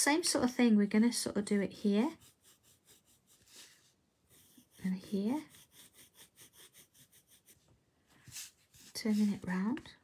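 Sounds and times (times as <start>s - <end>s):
pencil shading on paper: 1.8s - 9.6s.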